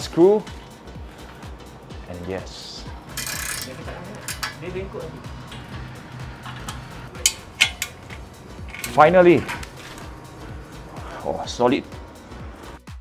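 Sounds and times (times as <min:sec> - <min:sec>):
background music: 0:00.0 - 0:13.0
metal clinks and clicks: 0:03.1 - 0:04.6, 0:06.5 - 0:10.1.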